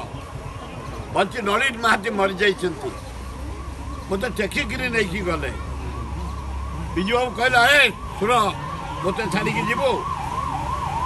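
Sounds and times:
emergency siren yelping: 0:01.4 - 0:11.0.

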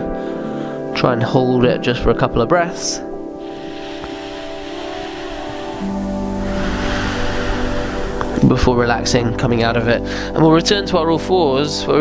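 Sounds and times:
sustained chords music: 0:03.0 - 0:10.1.

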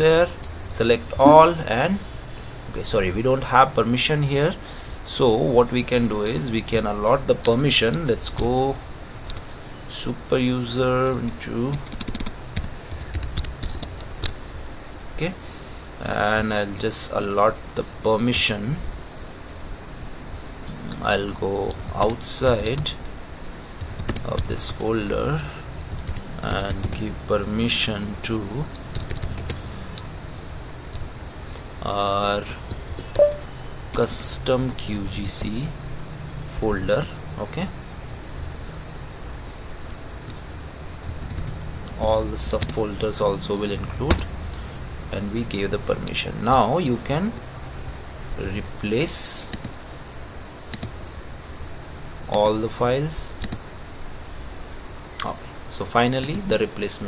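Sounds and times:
low steady hum: 0:00.0 - 0:57.0
faint keyboard clicks: 0:50.7 - 0:51.0.

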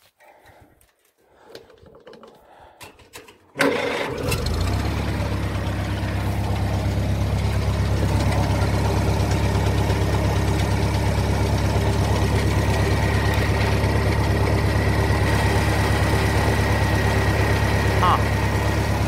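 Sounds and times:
engine idling: 0:03.6 - 0:19.0.

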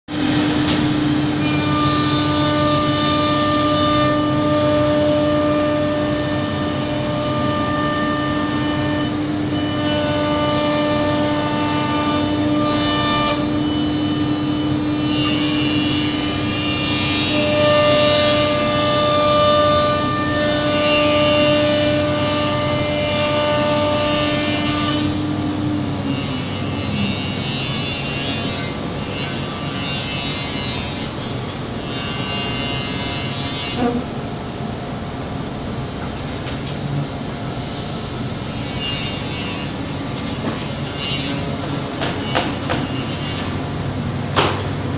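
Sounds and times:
router spindle whining: 0:00.2 - 0:34.1
higher whining tones: 0:00.2 - 0:34.6.

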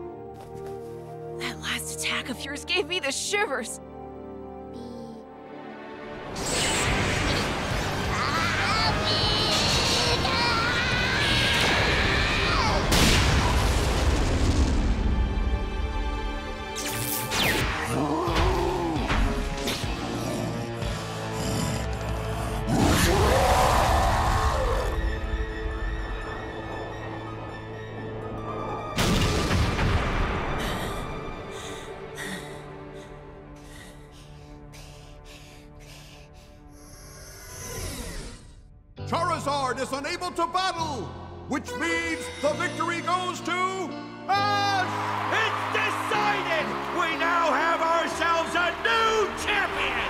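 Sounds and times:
dramatic background score: 0:00.0 - 0:50.0
electric attack explosive blast: 0:12.9 - 0:14.9.

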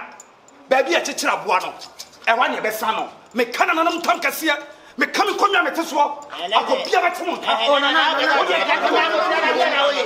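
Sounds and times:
men talking loudly: 0:00.7 - 0:10.0.

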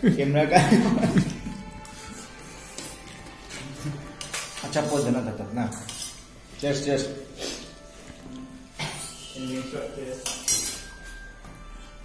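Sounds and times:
metal spoon scraping a steel plate: 0:03.6 - 0:06.4, 0:09.0 - 0:11.1.

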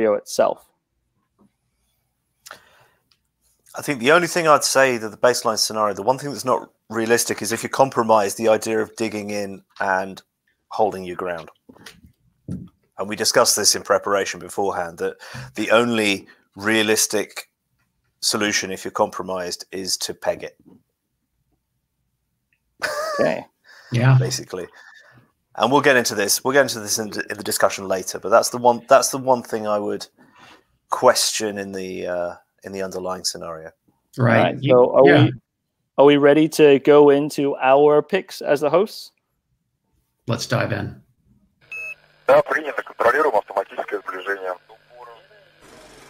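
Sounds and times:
person speaking: 0:03.7 - 0:17.2, 0:23.1 - 0:25.0, 0:34.2 - 0:35.4, 0:42.3 - 0:45.4
man laughing: 0:22.8 - 0:23.5
faint murmur: 0:42.3 - 0:46.0.

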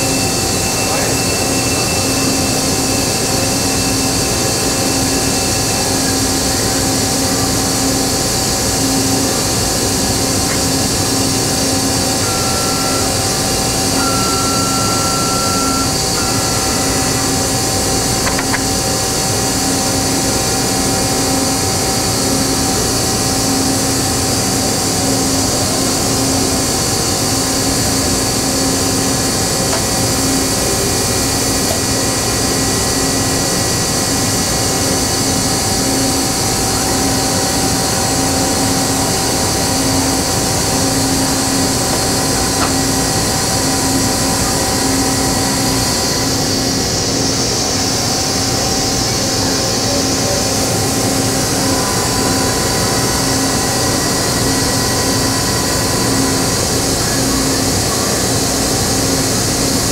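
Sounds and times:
industrial machinery humming: 0:00.0 - 0:59.9
thin high whine: 0:00.0 - 0:59.9.

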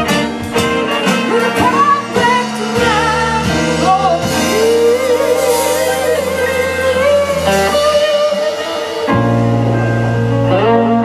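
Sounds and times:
live band playing soul music: 0:00.0 - 0:11.0.

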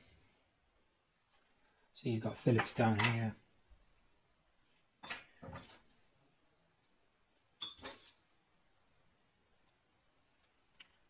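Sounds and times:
metal tools clinking: 0:07.6 - 0:08.3.

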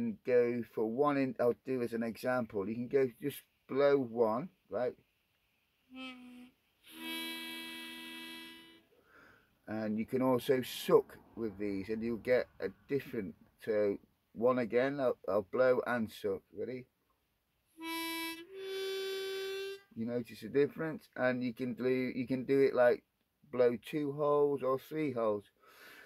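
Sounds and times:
harmonica notes: 0:05.9 - 0:09.4, 0:17.8 - 0:20.0.

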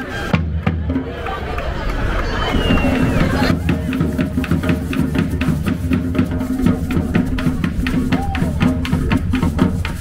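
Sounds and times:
hand drums playing fast rhythm: 0:03.0 - 0:10.0.

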